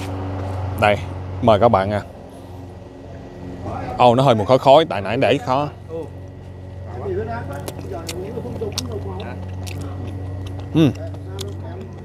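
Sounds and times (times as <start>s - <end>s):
man chewing: 6.2s - 12.0s
wet mouth clicks: 7.6s - 12.0s.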